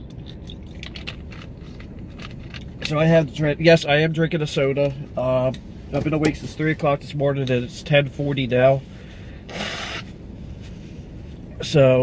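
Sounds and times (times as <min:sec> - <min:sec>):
truck cabin road rumble: 0:00.0 - 0:12.0
man blowing his nose: 0:09.5 - 0:10.2.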